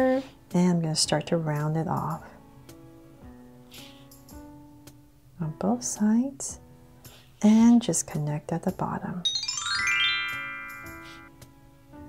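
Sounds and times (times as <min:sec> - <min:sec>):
rising run of ringing notes: 0:09.2 - 0:11.3.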